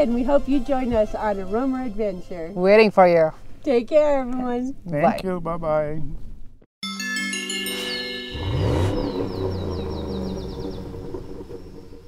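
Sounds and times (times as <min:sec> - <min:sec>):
chime chord: 0:06.8 - 0:09.5
high falling chirps: 0:06.8 - 0:11.6
deep rumble: 0:08.4 - 0:12.0.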